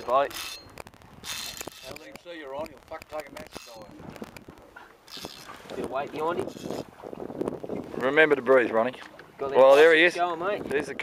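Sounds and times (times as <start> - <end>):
men talking: 0.0 - 0.4, 1.8 - 4.0, 5.7 - 6.6, 7.9 - 11.0.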